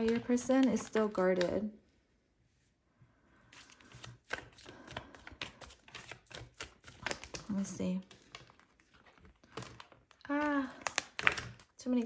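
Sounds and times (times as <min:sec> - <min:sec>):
cards being shuffled by hand: 0:00.0 - 0:01.7, 0:03.5 - 0:11.8.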